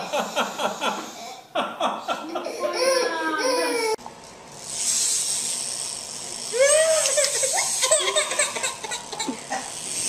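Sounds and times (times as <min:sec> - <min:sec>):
baby crying: 0:02.5 - 0:04.0.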